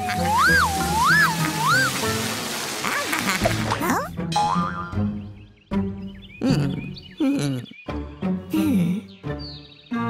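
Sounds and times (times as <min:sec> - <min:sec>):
cartoon soundtrack music: 0:00.0 - 0:02.2, 0:02.8 - 0:10.0.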